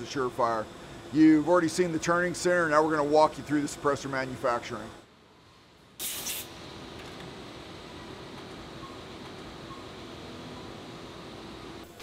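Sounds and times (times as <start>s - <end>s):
sharp hiss: 6.0s - 6.6s.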